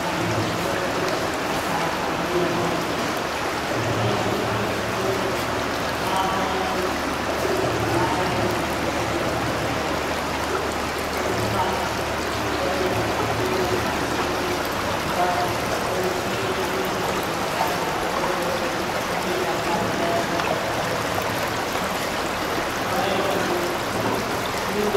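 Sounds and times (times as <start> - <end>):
running water: 0.0 - 24.9.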